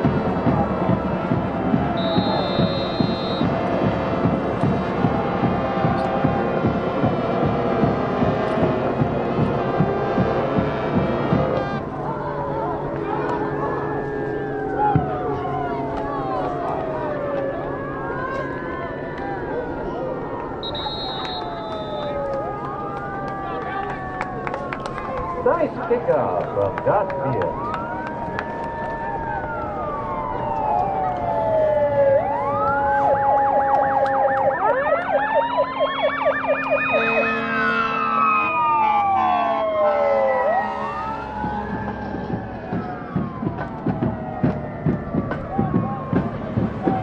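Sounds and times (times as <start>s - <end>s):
sirens wailing: 0.0s - 47.0s
siren warbling yelps: 12.0s - 46.2s.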